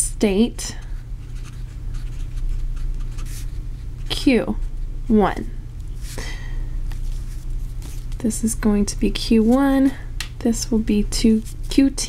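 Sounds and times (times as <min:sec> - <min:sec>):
steady low hum: 0:00.0 - 0:12.0
marker scratching on paper: 0:01.2 - 0:03.6.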